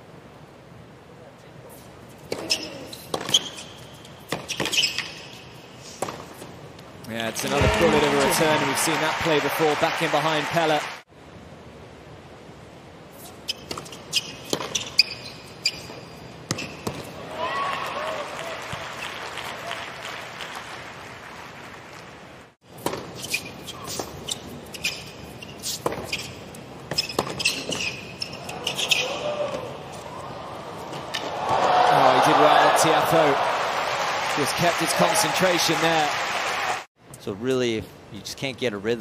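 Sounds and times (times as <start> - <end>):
tennis ball bouncing: 2.2 - 3.6, 13.6 - 15.1, 25.0 - 26.3, 26.9 - 27.9
sneakers squeaking on court: 2.2 - 6.5, 13.2 - 17.2, 22.7 - 29.2
racket striking tennis ball: 22.8 - 24.2.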